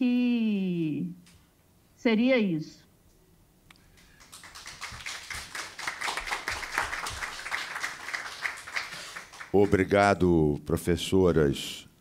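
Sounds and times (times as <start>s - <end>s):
people applauding: 3.9s - 10.2s.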